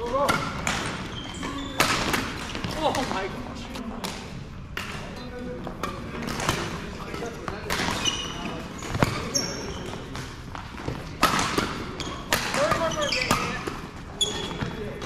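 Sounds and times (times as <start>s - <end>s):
rackets hitting shuttlecock: 0.0s - 3.2s, 5.8s - 15.0s
shoes squeaking on floor: 0.8s - 2.8s, 7.8s - 11.0s, 11.8s - 15.0s.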